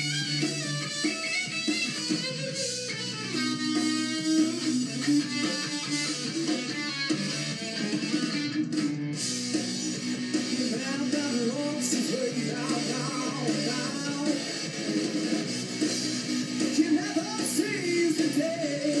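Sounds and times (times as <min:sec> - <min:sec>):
rock band on television speakers: 0:00.0 - 0:19.0.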